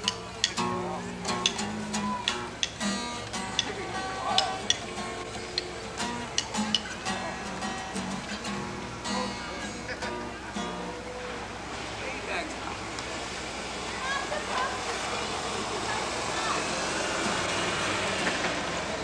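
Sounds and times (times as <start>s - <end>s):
acoustic guitar picking: 0.0s - 19.0s.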